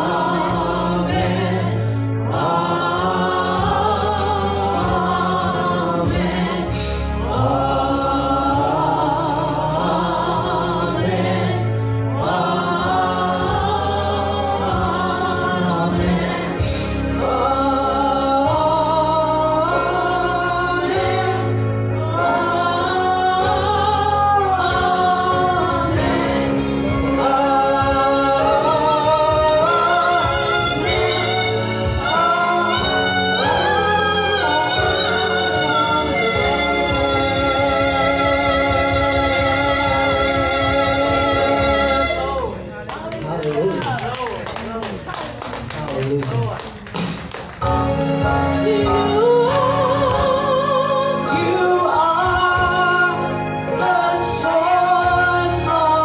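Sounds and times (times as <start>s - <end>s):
man and woman singing worship song: 0.0s - 42.6s, 48.1s - 56.0s
held instrumental chord with bass: 0.0s - 43.2s, 44.5s - 56.0s.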